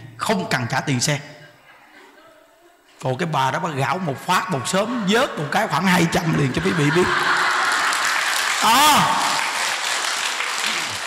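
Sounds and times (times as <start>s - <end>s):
audience applauding: 6.3s - 11.0s.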